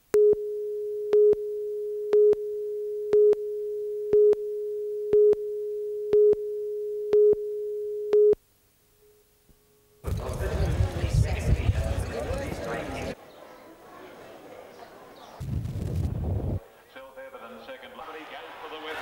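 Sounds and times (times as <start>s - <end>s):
sharp beeps: 0.2s - 8.4s.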